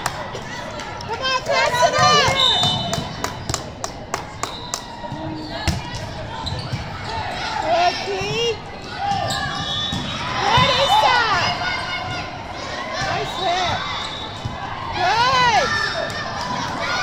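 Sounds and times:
players calling out: 0:04.5 - 0:17.0.

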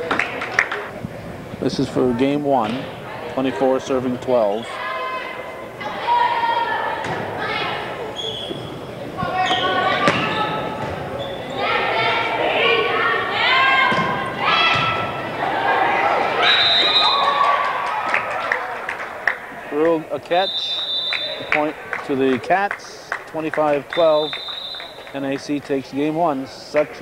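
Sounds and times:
people shouting and cheering: 0:03.0 - 0:08.2, 0:09.1 - 0:22.8.

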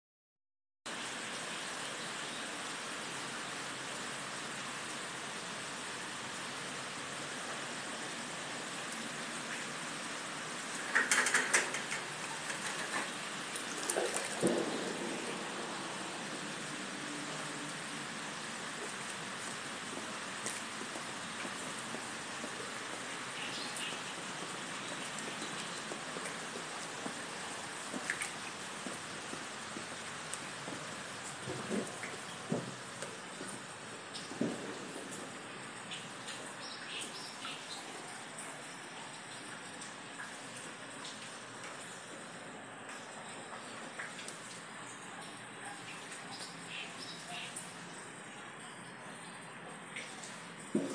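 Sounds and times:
rain hissing: 0:00.9 - 0:50.9
knocks and clatters: 0:10.8 - 0:13.2.

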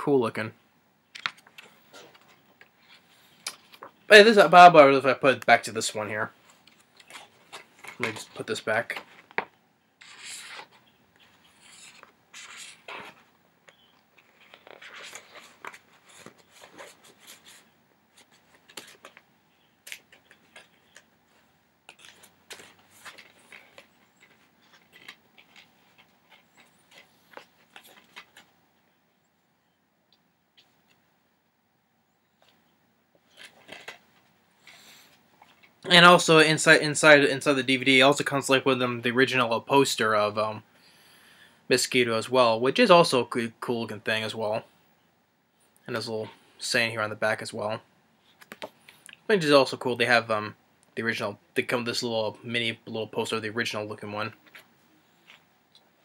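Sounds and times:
paper insert rustling in case: 0:10.0 - 0:28.5, 0:33.3 - 0:34.0.

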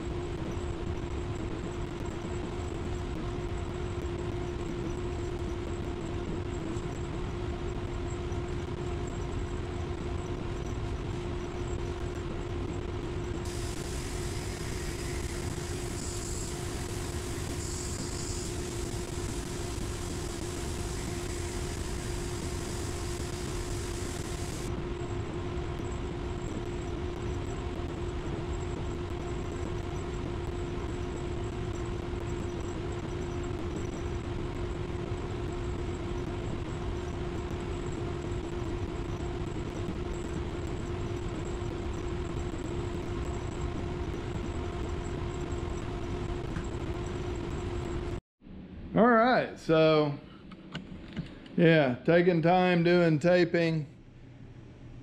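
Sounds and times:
ventilation fans running: 0:00.1 - 0:55.0
high hiss: 0:13.5 - 0:24.7.

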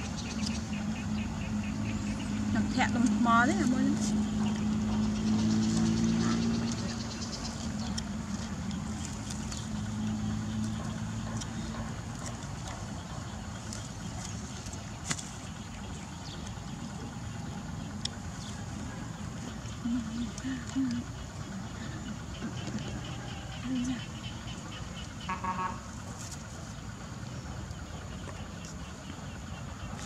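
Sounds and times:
engine hum: 0:00.0 - 0:30.0.

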